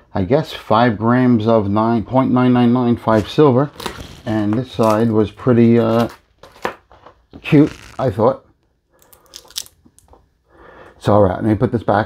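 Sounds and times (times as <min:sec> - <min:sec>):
plastic sleeve crinkling: 0:03.7 - 0:08.3, 0:09.0 - 0:10.2.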